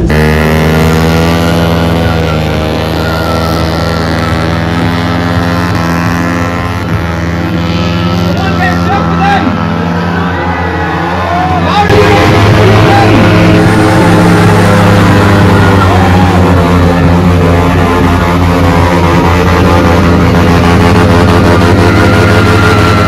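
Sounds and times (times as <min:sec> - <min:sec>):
crowd voices: 0:00.0 - 0:23.0
motorcycle engine revving high: 0:00.0 - 0:23.0.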